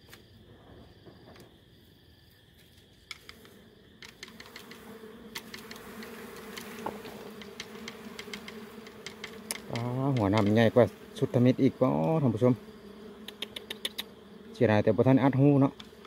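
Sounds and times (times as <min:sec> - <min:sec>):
honeybees buzzing: 0:02.9 - 0:16.0
twigs clicking and snapping: 0:07.4 - 0:10.6.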